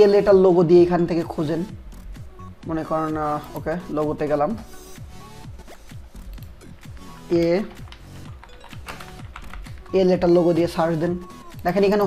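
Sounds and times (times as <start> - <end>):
computer keyboard typing: 3.1 - 4.0, 6.2 - 10.6.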